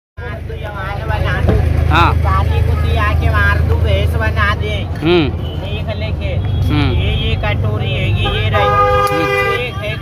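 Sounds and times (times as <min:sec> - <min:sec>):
low engine hum: 0:00.2 - 0:10.0
people talking: 0:00.2 - 0:10.0.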